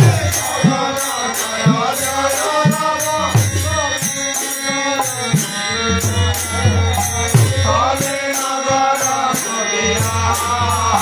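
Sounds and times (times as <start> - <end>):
double-headed drum beat: 0.0 - 0.9
men singing a devotional chant: 0.0 - 11.0
sustained harmonium: 0.0 - 11.0.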